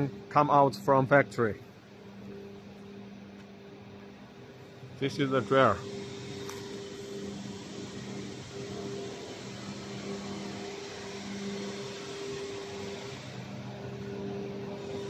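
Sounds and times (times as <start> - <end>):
factory machinery humming: 0.0 - 15.0.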